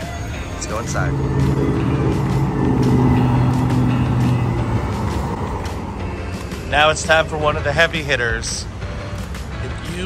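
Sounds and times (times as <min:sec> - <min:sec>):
vehicle engine humming: 0:00.0 - 0:09.7
background music: 0:00.0 - 0:10.0.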